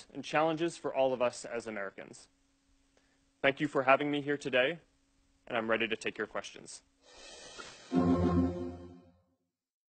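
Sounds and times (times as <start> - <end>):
closing music sting: 7.2 - 9.1
loud low held note: 7.2 - 9.1.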